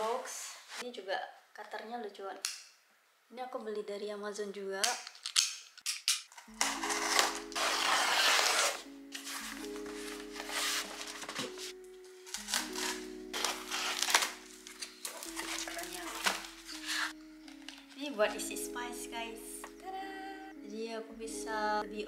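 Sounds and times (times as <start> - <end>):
box cutter slitting tape: 5.4 - 8.8, 12.3 - 17.1
background music with chords: 6.4 - 22.0
cardboard scraping and crinkling: 6.6 - 18.1.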